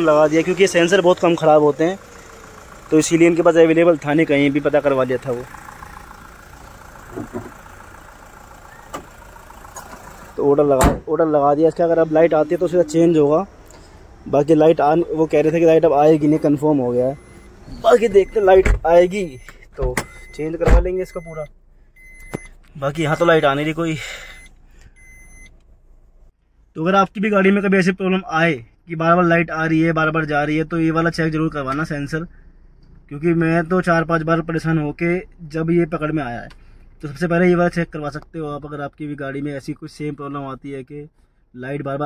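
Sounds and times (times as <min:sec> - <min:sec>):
car engine idling: 0:00.0 - 0:26.7.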